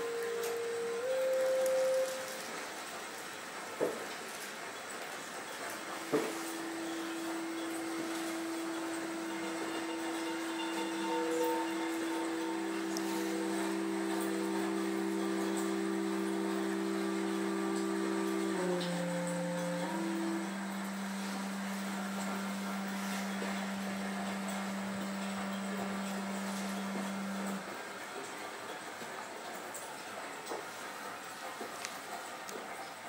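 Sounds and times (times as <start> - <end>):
drone music held tones: 0.0 - 3.4, 5.5 - 28.5.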